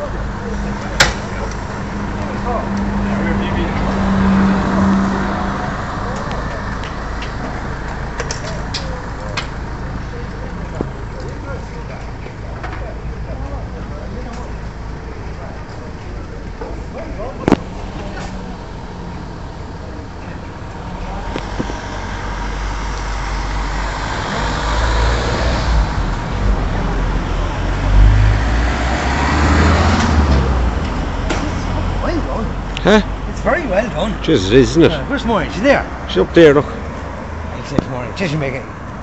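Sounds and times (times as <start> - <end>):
vehicle passing: 0.0 - 8.1, 17.2 - 39.0.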